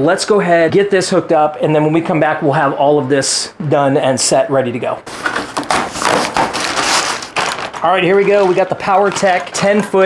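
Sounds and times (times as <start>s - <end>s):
plastic bag crinkling: 5.1s - 9.9s.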